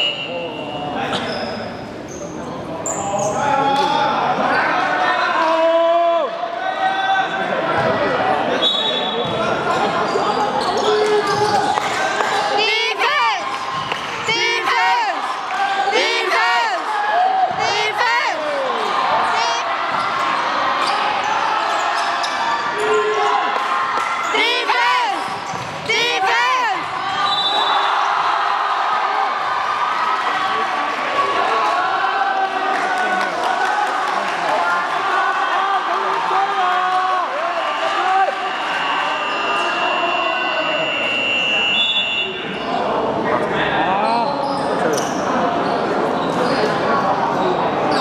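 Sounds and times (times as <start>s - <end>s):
chatter of players and spectators: 0.0s - 48.0s.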